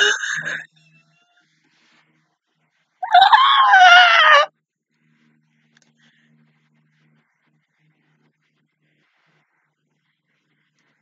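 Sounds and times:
woman squealing with laughter: 3.0s - 4.5s.

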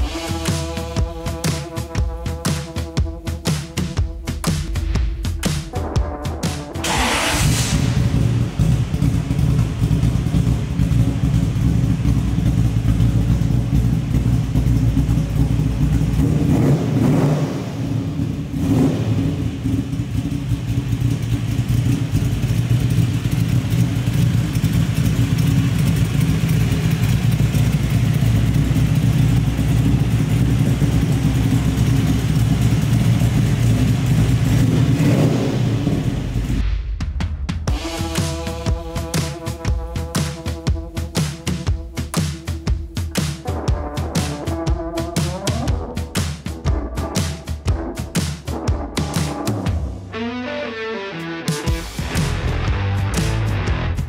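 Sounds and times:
engine throttle blips: 0.0s - 36.7s, 37.7s - 49.9s
car engine rumbling: 3.2s - 36.7s.

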